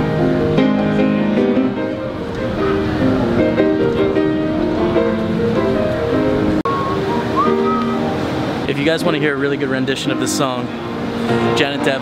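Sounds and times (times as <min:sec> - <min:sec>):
song with held instrumental notes: 0:00.0 - 0:12.0.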